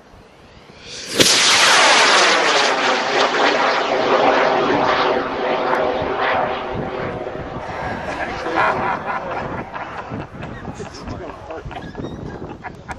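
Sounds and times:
rocket motor rushing: 0.7s - 10.7s.

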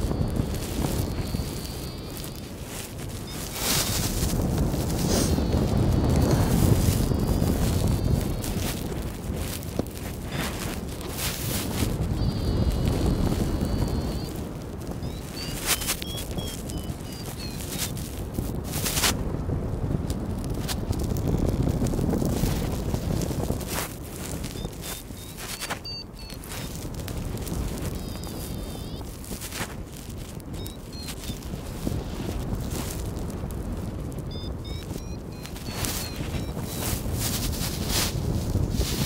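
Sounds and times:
faint high chirps: 0.0s - 4.1s, 12.1s - 17.9s, 24.5s - 26.8s, 27.8s - 29.1s, 30.6s - 31.9s, 34.3s - 37.0s
wind buffeting microphone: 0.0s - 39.0s.

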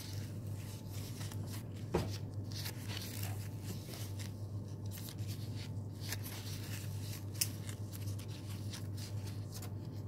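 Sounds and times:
stiff paper rustling and creasing: 0.0s - 10.0s.

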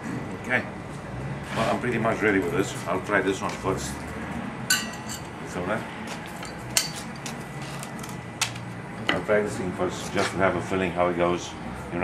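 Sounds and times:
metallic clinks of tools: 4.7s - 5.3s.

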